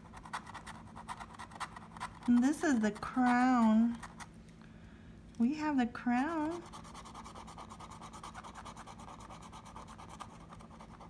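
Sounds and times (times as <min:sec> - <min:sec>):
plastic tool scraping lottery ticket: 0:00.0 - 0:04.3.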